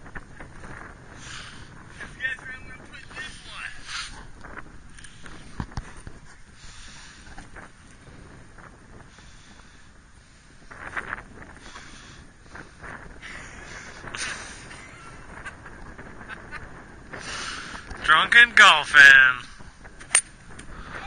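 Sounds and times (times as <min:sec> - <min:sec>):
wind noise on microphone: 0:00.0 - 0:21.0.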